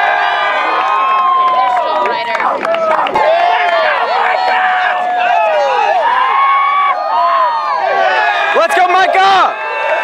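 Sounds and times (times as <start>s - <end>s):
crowd yelling and cheering: 0.0s - 10.0s.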